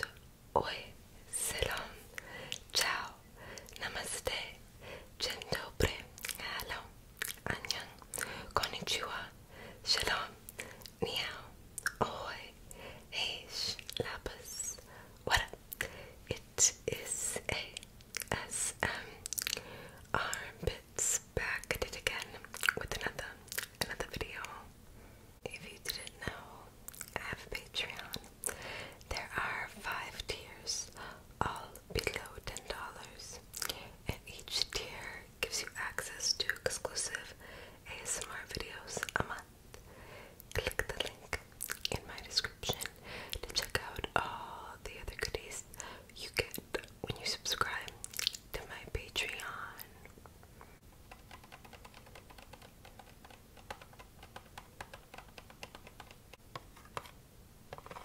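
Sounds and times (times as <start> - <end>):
person whispering: 0.0 - 4.6, 5.2 - 24.7, 25.4 - 28.3, 29.0 - 39.5, 40.6 - 50.1.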